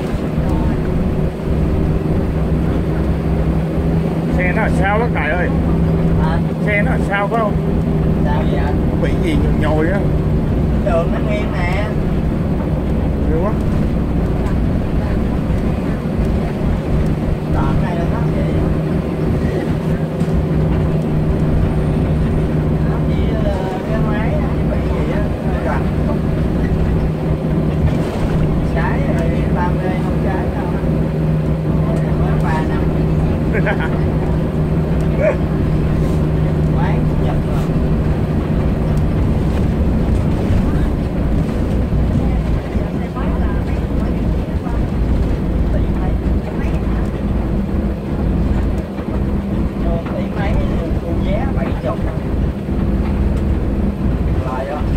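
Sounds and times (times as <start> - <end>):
bus engine and road noise: 0.0 - 54.9.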